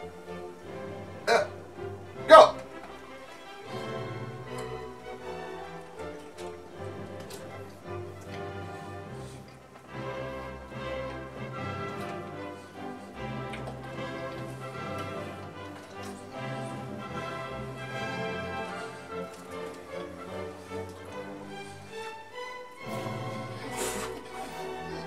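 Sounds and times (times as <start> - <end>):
music with light ticking beat: 0.0 - 25.0.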